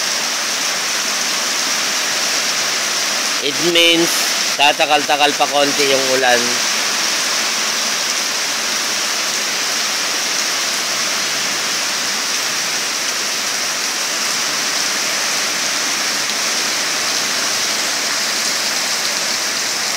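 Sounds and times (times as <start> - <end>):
heavy rain pouring onto water: 0.0 - 19.9.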